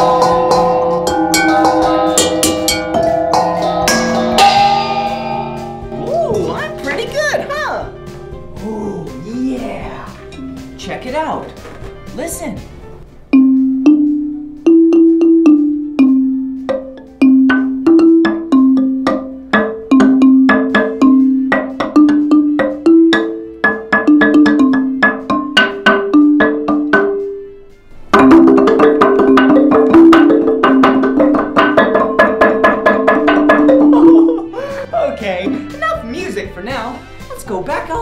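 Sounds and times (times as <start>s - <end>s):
marimba struck with soft mallets: 0.0s - 11.1s, 13.3s - 34.7s.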